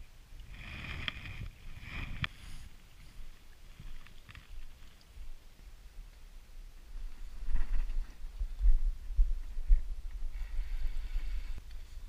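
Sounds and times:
wind buffeting microphone: 6.9s - 12.0s.

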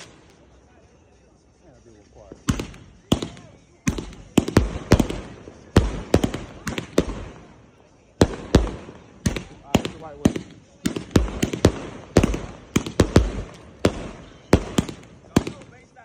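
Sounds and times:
firework bangs: 0.0s - 0.5s, 2.3s - 16.0s.

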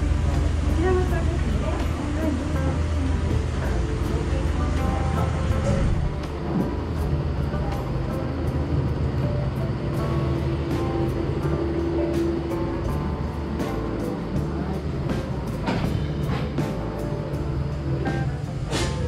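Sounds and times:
faint voices: 0.0s - 10.0s
background music: 0.0s - 19.0s
steady low rumble: 0.0s - 19.0s.

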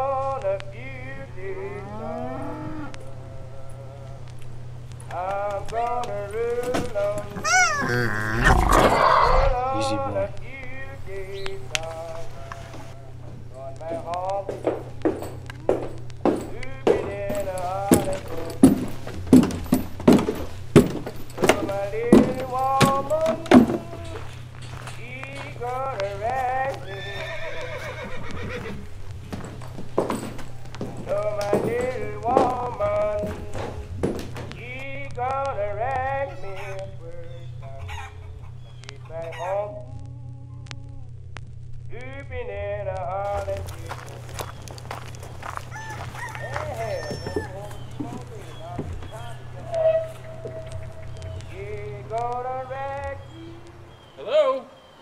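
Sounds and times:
cattle mooing: 1.7s - 4.2s, 7.2s - 10.3s
horse whinnying: 7.3s - 9.9s, 27.0s - 28.9s.

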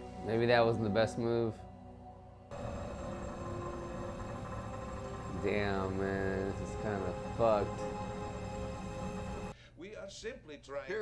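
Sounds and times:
low drone with held tones: 0.0s - 9.5s
low rumble: 2.5s - 9.5s.

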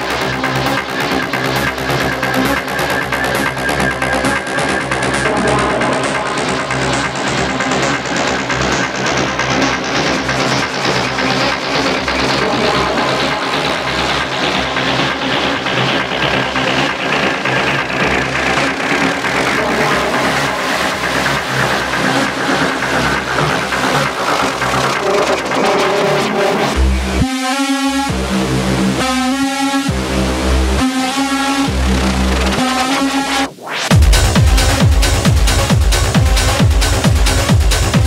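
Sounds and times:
techno music with steady beat: 0.0s - 38.0s.

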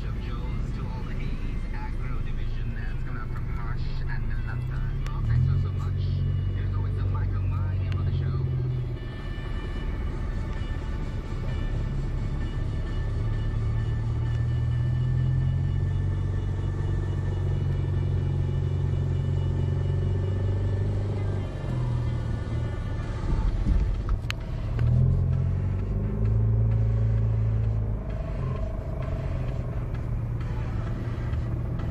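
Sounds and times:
car engine and tyres rumbling: 0.0s - 31.9s.

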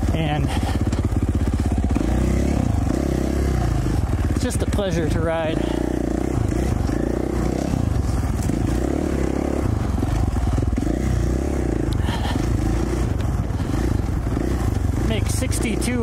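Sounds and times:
dirt bike engine revving: 0.0s - 16.0s
bike clattering over rough ground: 6.1s - 15.1s.

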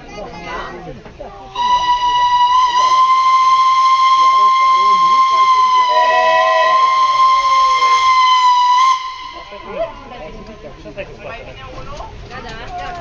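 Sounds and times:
steam locomotive whistle: 1.5s - 9.9s.

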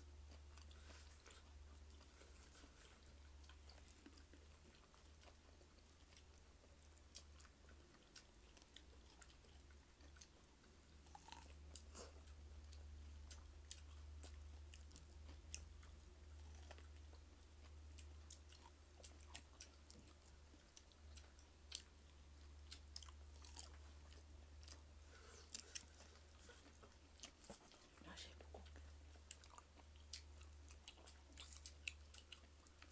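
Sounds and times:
mouth chewing clicks and smacks: 0.2s - 32.9s.

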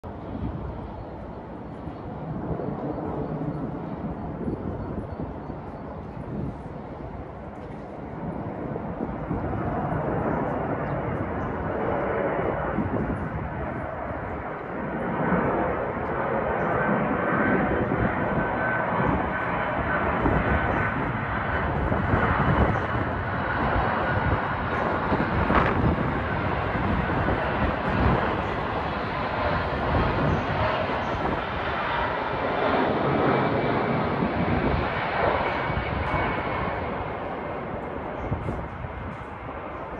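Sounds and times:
jet engine rumble: 0.0s - 39.9s.

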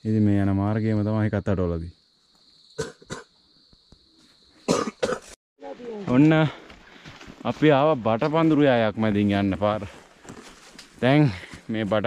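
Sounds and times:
person coughing or speaking: 4.7s - 5.3s.

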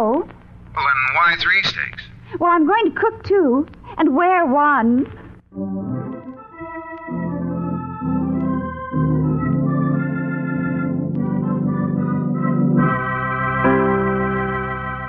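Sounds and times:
organ playing held chords: 5.4s - 15.0s.

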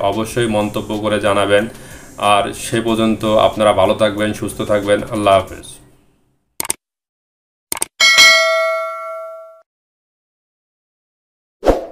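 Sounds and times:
bell ding: 8.0s - 9.6s.

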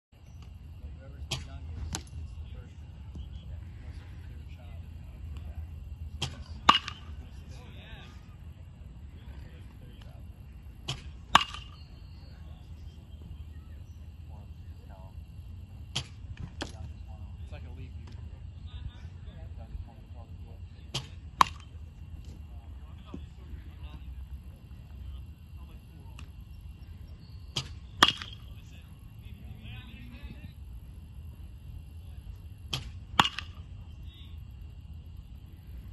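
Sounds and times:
faint distant voices: 0.2s - 35.9s
steady low rumble: 0.2s - 35.9s
bat cracking against ball: 6.2s - 7.2s, 10.8s - 12.0s, 21.0s - 21.7s, 27.5s - 28.5s, 32.7s - 33.7s.

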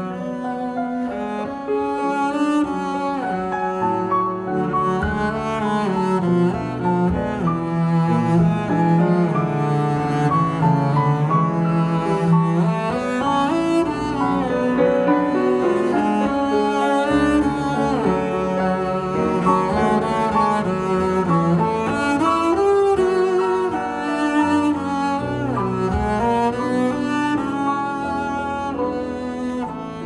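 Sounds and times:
double bass bowed melody: 0.0s - 30.0s
grand piano: 0.0s - 30.0s.

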